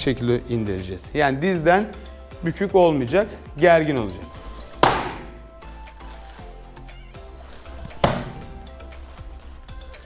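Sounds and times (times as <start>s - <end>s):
soft background music: 0.0s - 10.0s
foot slapping kicking paddle: 4.7s - 5.5s, 7.6s - 9.3s.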